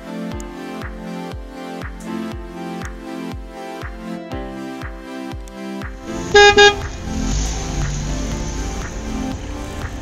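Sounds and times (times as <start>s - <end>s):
background music: 0.0s - 10.0s
car horn honking: 6.1s - 6.8s.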